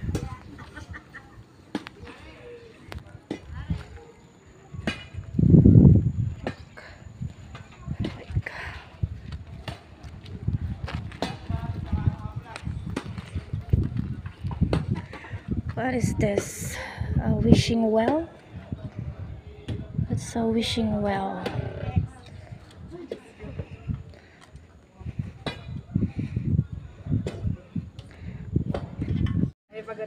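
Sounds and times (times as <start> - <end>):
faint voices: 0.0 - 29.5
wind buffeting microphone: 0.0 - 29.6.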